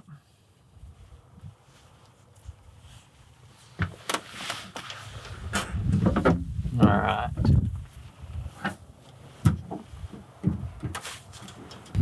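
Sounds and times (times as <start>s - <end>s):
rustling and handling noises: 0.3s - 6.8s, 7.6s - 12.0s.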